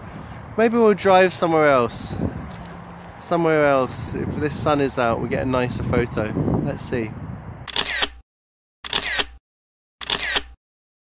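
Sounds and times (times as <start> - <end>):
camera shutter whir and click: 7.7 - 8.2, 8.8 - 9.4, 10.0 - 10.6.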